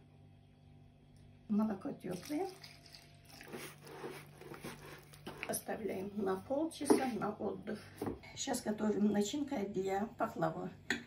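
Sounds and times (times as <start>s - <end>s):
dough being stirred in a bowl: 2.1s - 7.4s.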